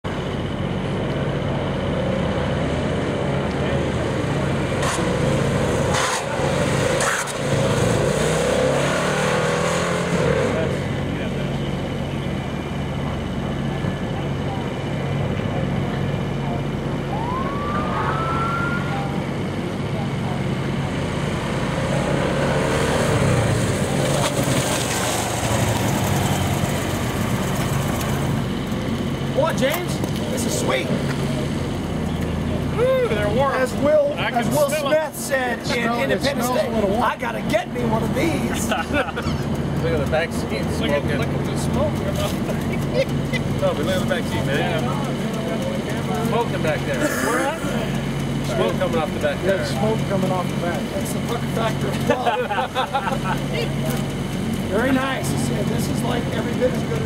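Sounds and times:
motorcycle engines running: 0.1 - 57.0.

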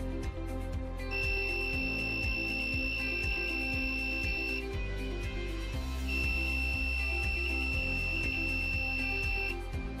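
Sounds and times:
buzzer high-pitched tone: 1.1 - 4.8, 5.8 - 9.7.

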